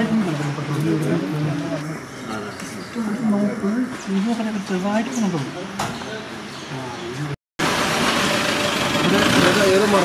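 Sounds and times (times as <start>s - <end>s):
vehicle engine idling: 7.6s - 10.0s.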